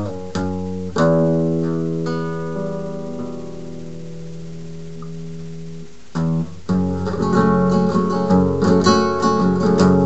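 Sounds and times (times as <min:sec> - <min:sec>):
held guitar chord ringing: 0:00.0 - 0:10.0.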